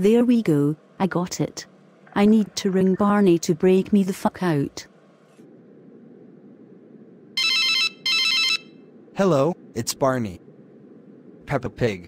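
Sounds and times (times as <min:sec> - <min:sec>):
faint steady hiss: 0:00.0 - 0:12.0
telephone ringing: 0:07.4 - 0:08.8.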